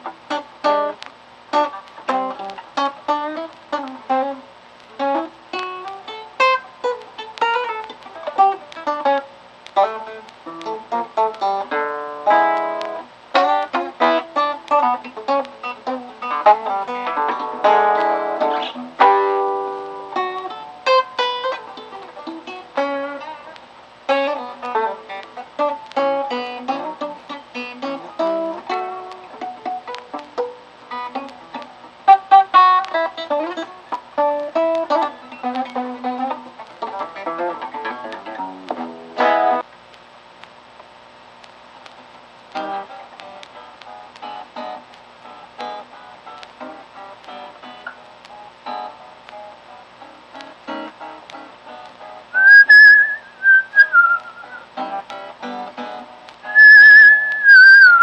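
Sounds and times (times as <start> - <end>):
acoustic guitar blues playing: 0.0 - 4.4, 5.0 - 39.6, 42.6 - 58.0.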